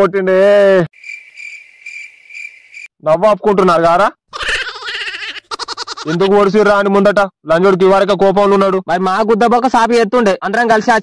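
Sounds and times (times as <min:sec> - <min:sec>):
crickets chirping: 0:00.9 - 0:02.9.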